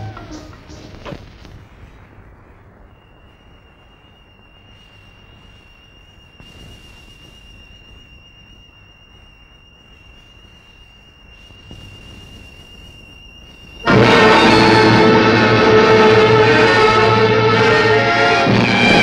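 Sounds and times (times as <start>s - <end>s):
film soundtrack hiss and hum: 0.0s - 19.0s
high-pitched whistling tone: 2.8s - 19.0s.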